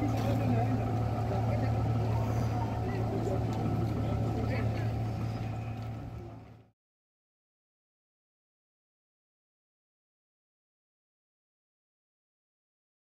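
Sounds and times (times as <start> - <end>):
outboard motor running: 0.0 - 6.7
people's voices: 0.0 - 6.7.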